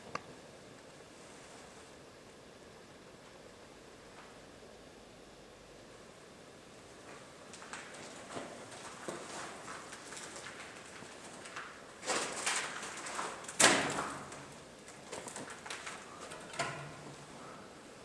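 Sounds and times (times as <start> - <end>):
scuffing against concrete walls: 6.9 - 17.4.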